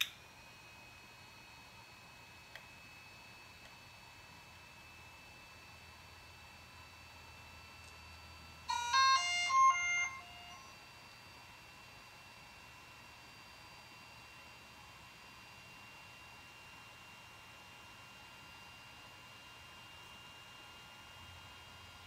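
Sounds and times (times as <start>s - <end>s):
faint steady high tones: 6.8s - 11.5s
drone startup beeps: 8.7s - 10.7s.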